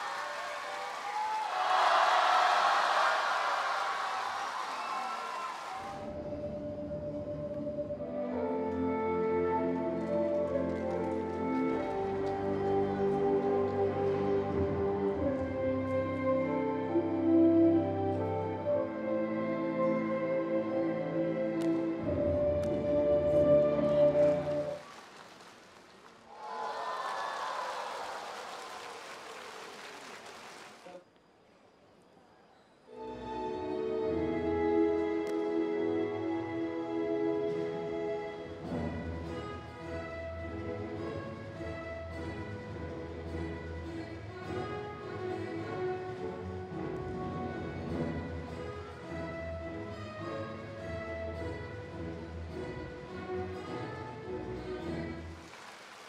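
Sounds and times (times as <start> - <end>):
crowd applauding: 0.0 - 6.1, 23.9 - 31.0, 55.3 - 56.0
faint background music: 6.0 - 24.8, 32.2 - 55.5
instrumental music with held notes: 6.0 - 24.8.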